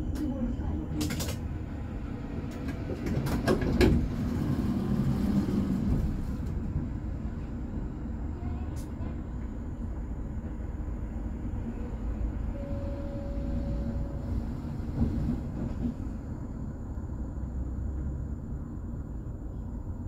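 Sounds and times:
vehicle rumble: 0.0s - 20.0s.

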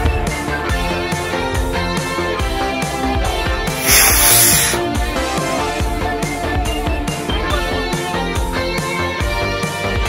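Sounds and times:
rocket motor hissing: 3.7s - 4.8s.

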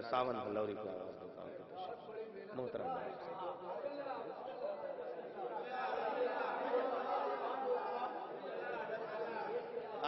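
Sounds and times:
murmur of men's voices: 0.0s - 10.0s.

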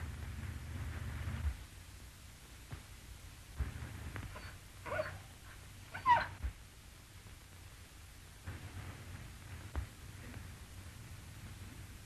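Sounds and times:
film soundtrack hiss: 0.0s - 12.0s
dog whimpering: 4.3s - 6.4s.

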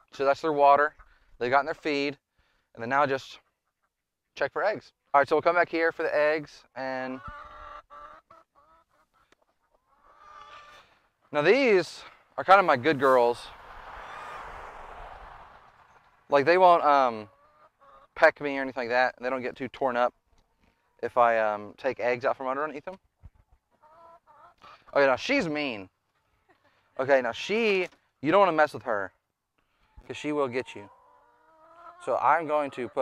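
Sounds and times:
hen calling: 7.0s - 12.1s, 29.8s - 33.0s.

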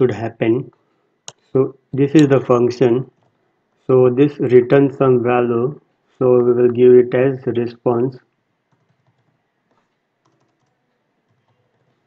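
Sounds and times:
person speaking: 0.0s - 3.2s, 3.8s - 8.3s
faint keyboard typing: 0.6s - 4.2s, 8.2s - 12.0s.

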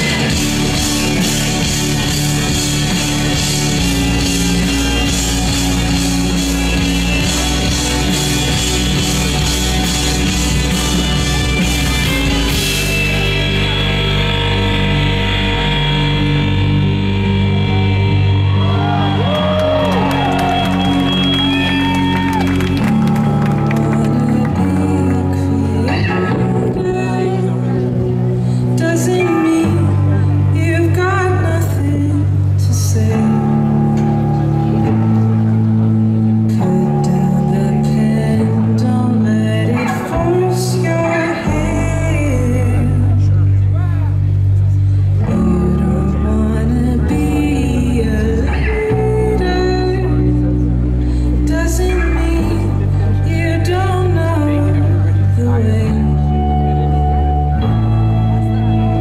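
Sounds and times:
person singing: 0.0s - 35.2s, 36.3s - 59.0s
electric guitar chords ringing: 0.0s - 59.0s
live rock band: 0.0s - 59.0s
low bass note: 0.0s - 59.0s
crowd whooping and cheering: 17.4s - 24.2s.

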